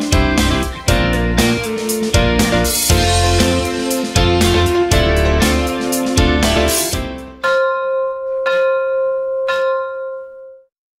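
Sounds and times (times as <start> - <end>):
background music: 0.0 - 8.4
bell-like chime: 7.4 - 10.7.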